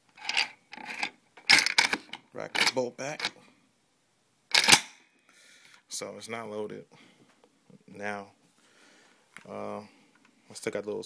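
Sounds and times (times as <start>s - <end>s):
gun metal scraping: 0.2s - 3.3s.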